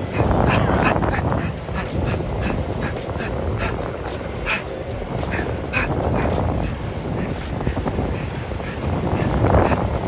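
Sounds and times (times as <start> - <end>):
sharp breath puffs: 0.0 - 10.0
skateboard wheels rumbling on asphalt: 0.0 - 10.0
wind on microphone: 0.0 - 10.0.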